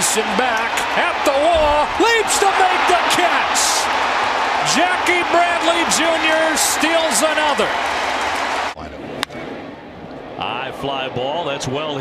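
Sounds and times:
crowd cheering loudly: 0.0 - 8.8.

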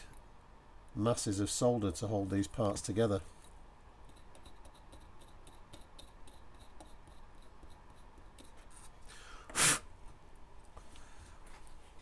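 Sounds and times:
puff of breath: 9.1 - 9.9.

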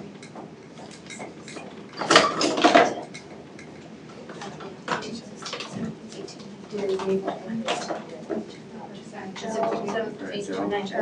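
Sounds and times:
medical equipment clattering: 0.0 - 8.6
quiet voices: 3.9 - 11.0.

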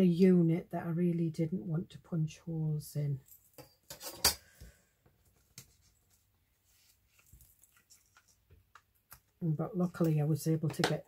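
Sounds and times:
faint handling noises: 3.2 - 9.4
tools clacking on wooden table: 3.5 - 4.6.

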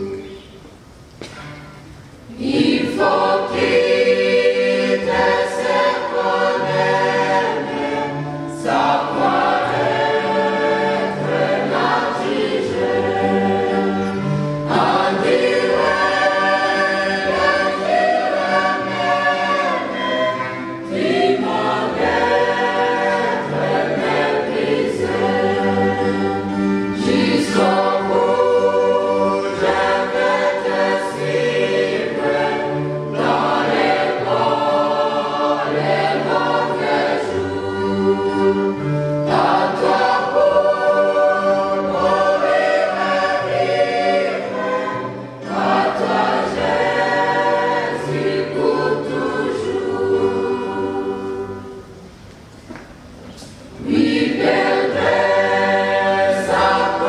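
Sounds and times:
choir singing a hymn: 0.0 - 0.5, 2.0 - 52.3, 53.4 - 57.0.

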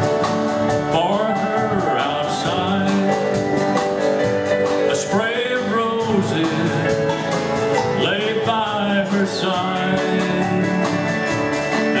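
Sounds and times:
gliding lead melody: 0.0 - 12.0
live country band playing: 0.0 - 12.0.

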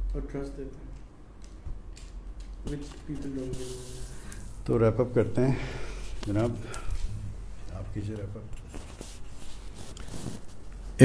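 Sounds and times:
soft spoken murmur: 2.7 - 4.1.

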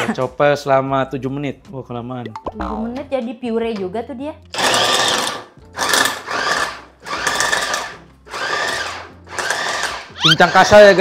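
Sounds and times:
food chopper motor whirring: 4.6 - 11.0.

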